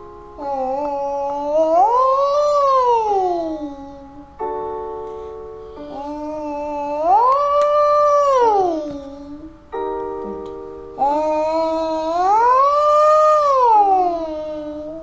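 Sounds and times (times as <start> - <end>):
keyboard chords: 0.0 - 15.0
child singing vocal slides: 0.4 - 4.6, 5.6 - 9.7, 11.0 - 15.0.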